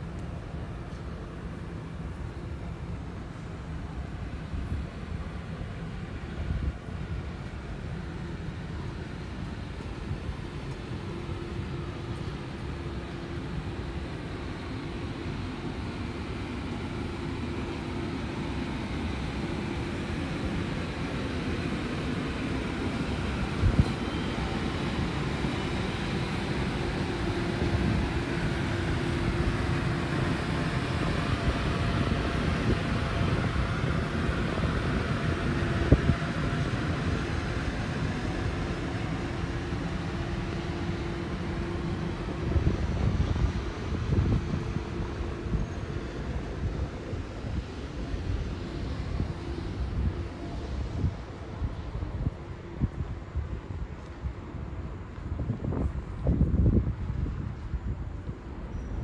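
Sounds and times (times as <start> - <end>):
distant vehicles rumble: 0.0 - 58.7.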